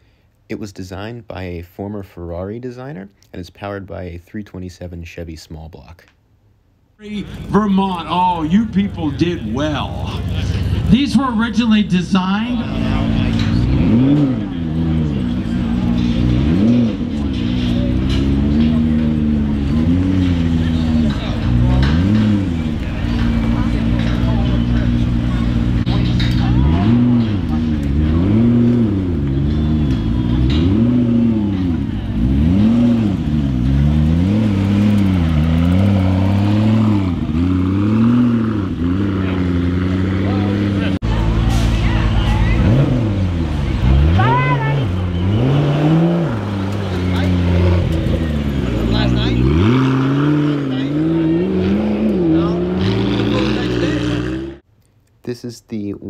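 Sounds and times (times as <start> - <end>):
car engine revving: 7.0 - 54.6.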